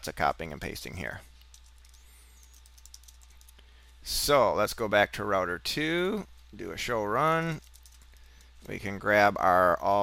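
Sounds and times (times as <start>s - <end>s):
low steady hum: 0.0s - 10.0s
computer keyboard clicks: 1.4s - 3.6s, 7.6s - 8.5s.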